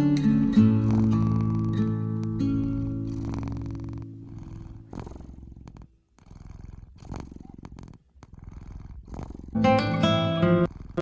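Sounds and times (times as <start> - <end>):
guitar notes: 0.0 - 3.2, 9.6 - 10.7
cat purring: 0.0 - 11.0.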